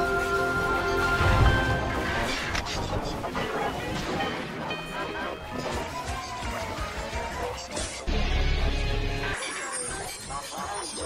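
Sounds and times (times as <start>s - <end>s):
processed jingle music: 0.0s - 11.0s
sound effects: 0.0s - 11.0s.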